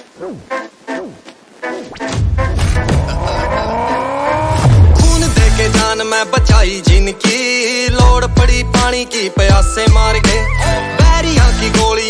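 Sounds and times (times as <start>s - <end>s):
song with heavy bass beat: 2.2s - 12.0s
car pulling away with whine: 2.8s - 5.2s.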